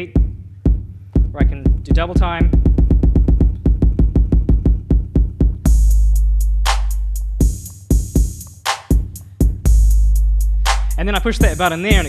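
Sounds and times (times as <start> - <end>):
rapid repeated drum machine hits: 0.0 - 12.0.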